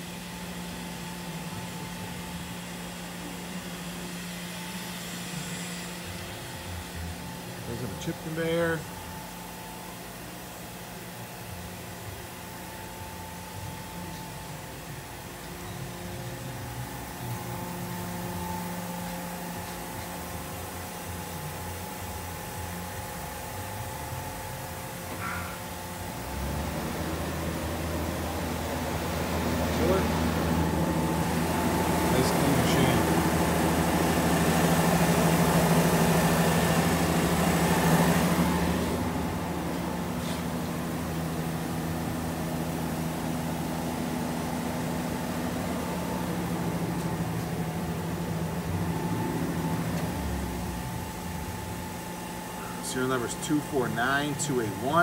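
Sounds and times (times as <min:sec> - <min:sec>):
machining centre hum: 0:00.0 - 0:55.0.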